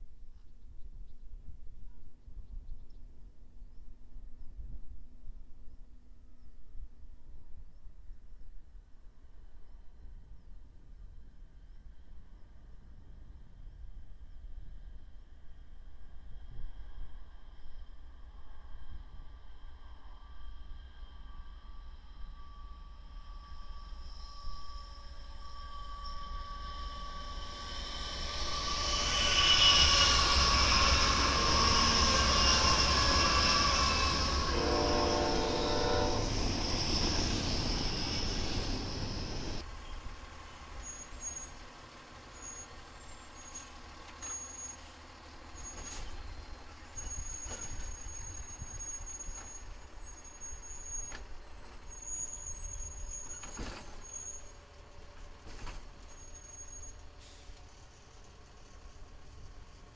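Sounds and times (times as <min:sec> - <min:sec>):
diesel locomotive engines rumbling: 0:09.1 - 0:59.9
high wheel squeal: 0:19.0 - 0:59.9.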